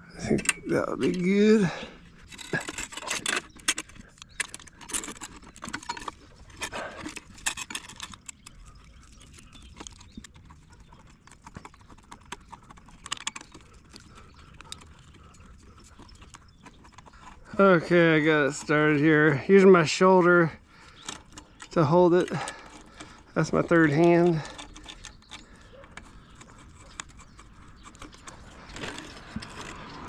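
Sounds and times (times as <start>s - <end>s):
hose clamp strap clicking: 2.2s - 19.0s, 20.7s - 30.0s.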